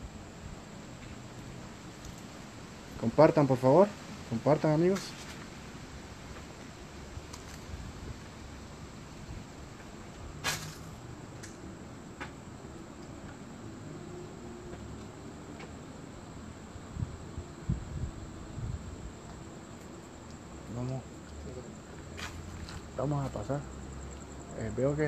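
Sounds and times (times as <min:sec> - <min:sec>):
crickets chirping: 0:00.0 - 0:25.0.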